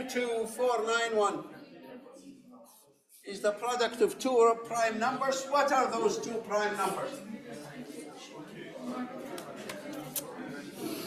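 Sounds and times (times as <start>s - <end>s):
low indistinct voices: 0.0s - 11.0s.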